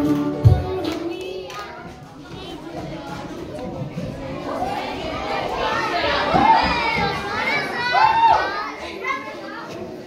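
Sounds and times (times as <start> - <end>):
young children chattering: 0.6 - 10.0.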